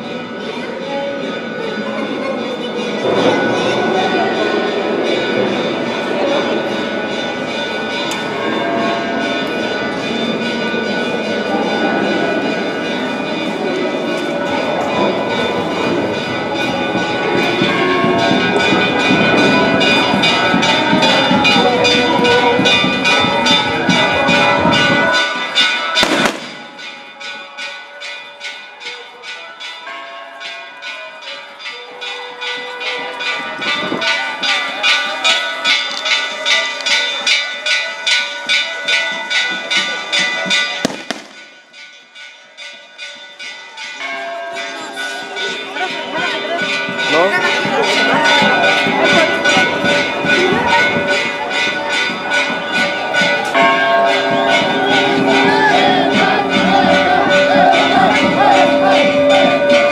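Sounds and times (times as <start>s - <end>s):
church bells pealing: 0.0s - 59.9s
loud low din: 52.1s - 59.9s.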